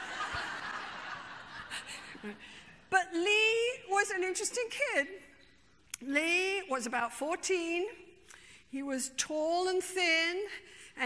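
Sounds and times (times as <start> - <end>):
audience laughing: 0.0 - 2.4.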